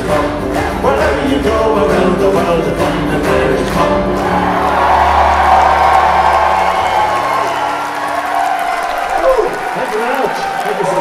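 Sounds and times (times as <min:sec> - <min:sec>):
audience applause and cheering: 0:00.0 - 0:11.0.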